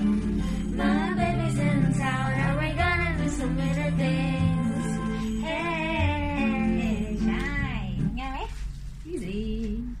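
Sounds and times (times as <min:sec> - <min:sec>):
backing music: 0:00.0 - 0:08.4
girl singing: 0:00.7 - 0:08.1.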